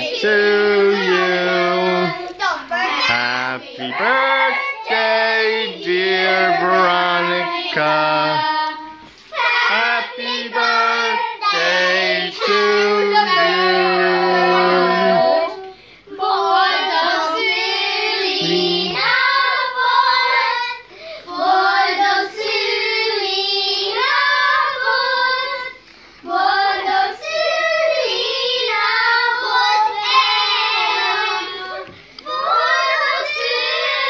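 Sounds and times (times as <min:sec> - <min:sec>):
children singing together: 0:00.0 - 0:34.0.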